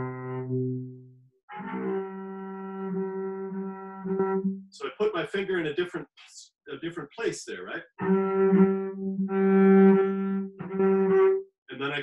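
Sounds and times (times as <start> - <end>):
cello harmonics bowed: 0.0 - 4.8, 7.8 - 12.0.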